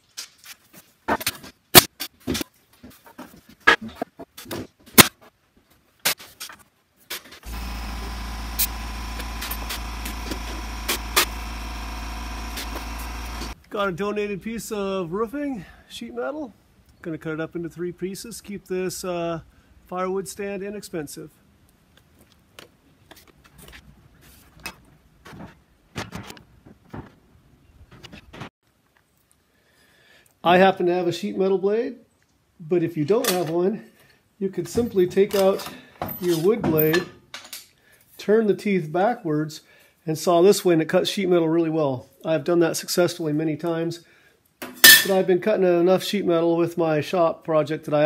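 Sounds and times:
air compressor motor humming: 7.4 - 13.6.

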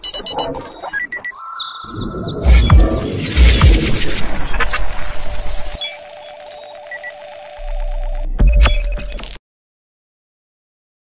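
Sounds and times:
short electronic beeps: 0.0 - 7.6
steady scanning tone: 0.0 - 8.4.

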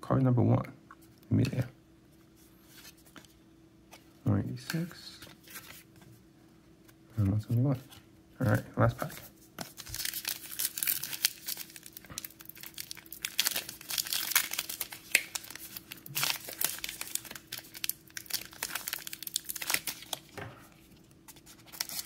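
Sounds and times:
foil wrapper tearing and crinkling: 9.7 - 20.3, 21.6 - 22.0.

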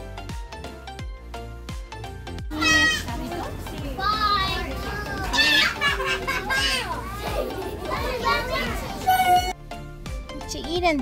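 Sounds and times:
children talking and calling out: 2.5 - 9.6.

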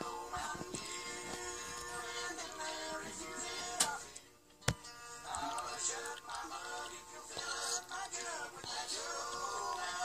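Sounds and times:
acoustic guitar: 0.0 - 10.0.

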